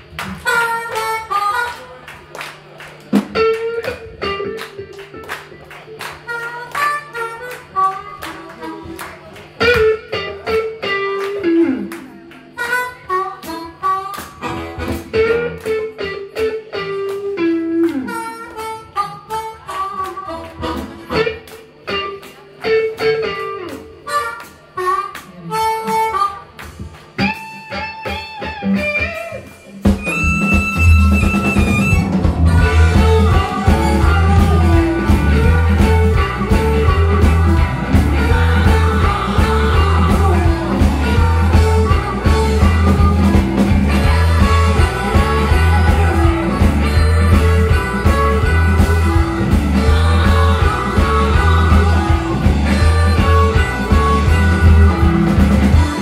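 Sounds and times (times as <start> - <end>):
band with electric guitars: 0.0 - 56.0
blues harmonica solo: 0.2 - 2.2, 6.0 - 11.8, 12.5 - 56.0.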